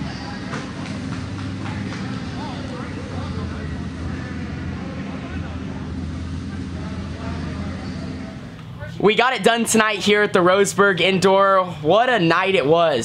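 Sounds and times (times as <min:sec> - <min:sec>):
kart engine running: 0:00.0 - 0:11.3
crowd voices: 0:00.0 - 0:13.0.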